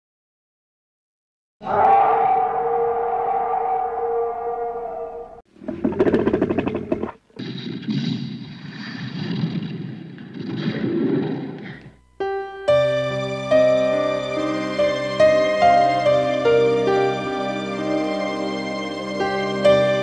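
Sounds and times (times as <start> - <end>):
held tone: 1.6 - 5.4
noisy swelling texture: 1.6 - 5.4.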